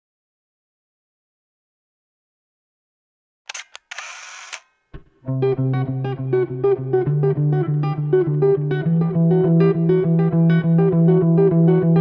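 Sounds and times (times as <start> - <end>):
camera shutter clicks: 3.5 - 4.8
film advance winding noise: 3.5 - 4.8.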